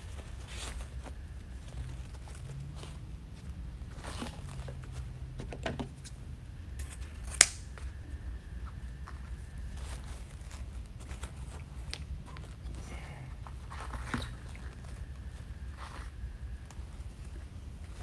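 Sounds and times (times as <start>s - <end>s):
ribbon rustling and crinkling: 0.0s - 6.1s, 8.7s - 18.0s.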